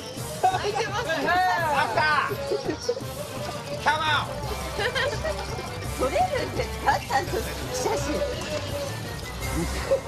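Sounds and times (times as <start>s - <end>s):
background music: 0.0s - 10.0s
people talking: 3.8s - 9.0s.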